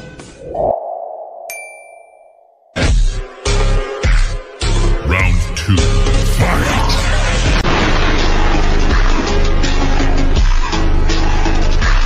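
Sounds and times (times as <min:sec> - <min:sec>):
sustained mid-pitched tone: 0:00.5 - 0:02.7
bell-like ding: 0:01.5 - 0:02.8
background music: 0:03.5 - 0:07.6.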